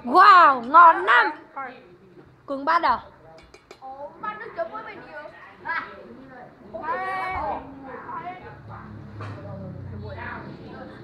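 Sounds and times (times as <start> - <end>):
background chatter: 0.0 - 11.0.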